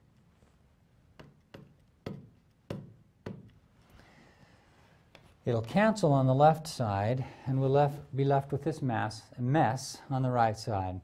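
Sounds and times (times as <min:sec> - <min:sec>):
stylus tapping on glass touchscreen: 0:01.2 - 0:03.6.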